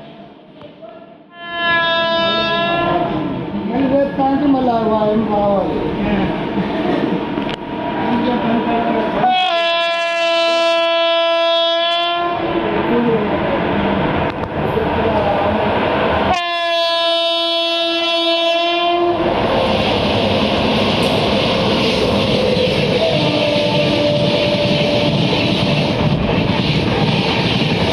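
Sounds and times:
train rushing and rattling past: 0.0 - 27.9
train horn blasts: 1.3 - 3.0, 9.2 - 12.4, 16.3 - 19.2, 23.0 - 25.3.

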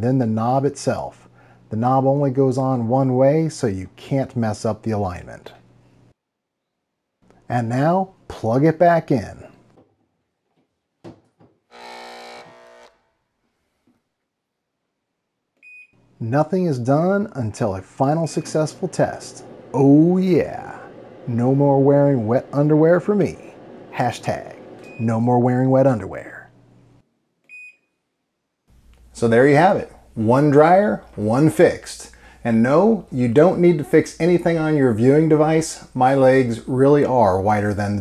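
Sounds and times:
steady electric buzz: 11.7 - 13.1, 16.2 - 26.0.

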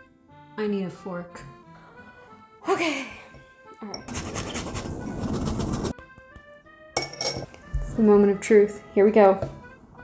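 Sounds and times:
cheese grating on metal grater: 4.1 - 5.9.

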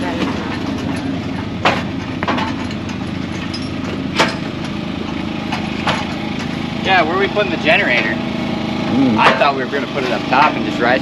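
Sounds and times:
loader engine idling: 0.0 - 11.0.

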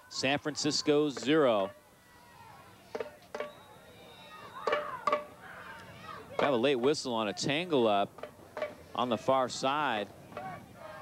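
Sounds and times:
players shouting: 0.0 - 6.6, 9.1 - 11.0
low crowd noise: 0.0 - 11.0.

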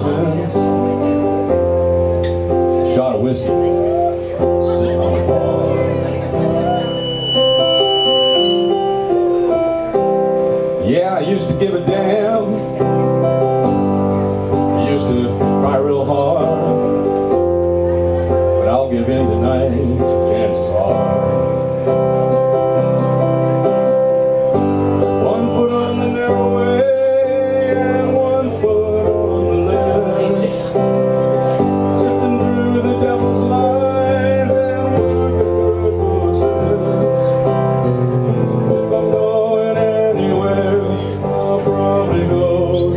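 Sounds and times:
electronic keyboard chords: 0.0 - 42.9.

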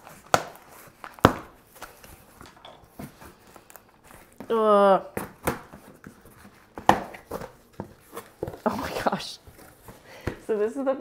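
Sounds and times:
cardboard scraping and rustling: 5.4 - 10.1
taps and knocks on cardboard box: 6.8 - 8.7.

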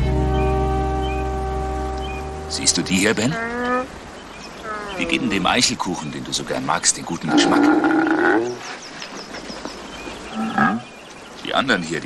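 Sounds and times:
faint high chirps: 0.2 - 6.3
bear moaning call: 2.6 - 5.7, 7.3 - 8.6, 10.4 - 10.9.

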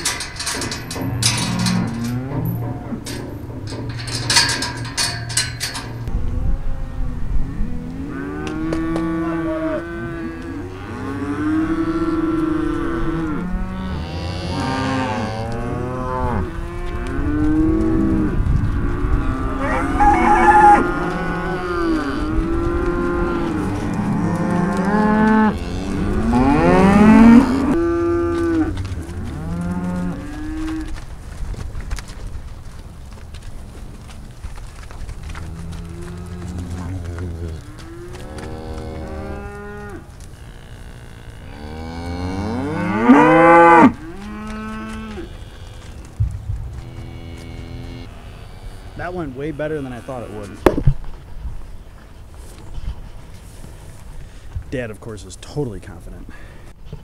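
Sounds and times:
cows mooing: 0.0 - 6.1, 6.8 - 31.0, 35.2 - 46.1, 46.7 - 50.7
sharp clattering knocks: 0.0 - 6.1.

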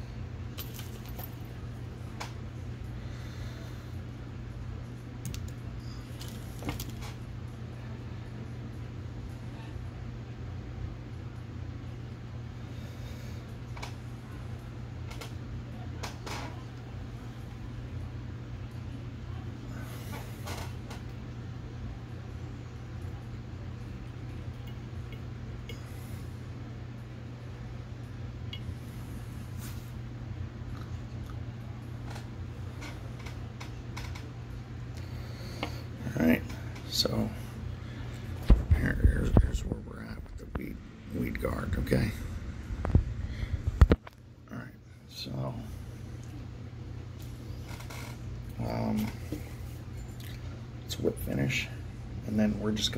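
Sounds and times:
low room hum: 0.0 - 52.9.

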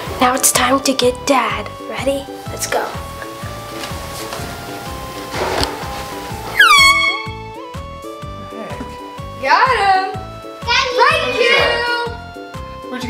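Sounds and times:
background music with beat: 0.0 - 13.0
air horn blast: 6.5 - 7.6.

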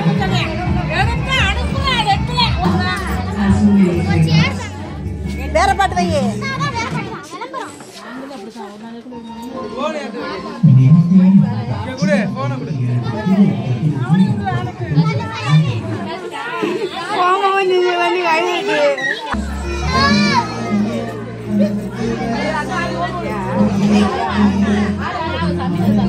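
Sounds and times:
background music: 0.0 - 7.2, 19.4 - 26.0
children chattering: 0.0 - 26.0.

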